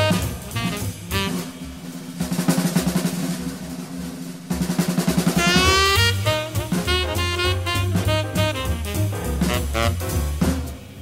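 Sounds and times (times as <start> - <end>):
horn rising phrase: 0.0 - 1.7, 5.4 - 10.6
rapid snare drum rolls: 0.0 - 11.0.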